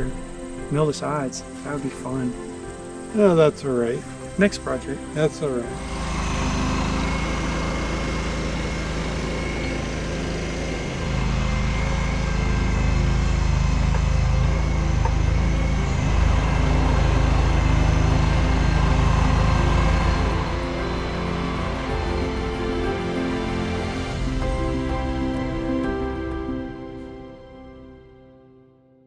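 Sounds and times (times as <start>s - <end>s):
passing vehicle engine rumble: 0.0s - 27.4s
background music: 0.0s - 29.0s.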